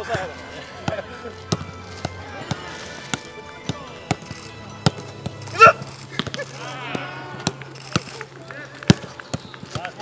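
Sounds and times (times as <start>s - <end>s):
foot kicking football: 0.0s - 10.0s.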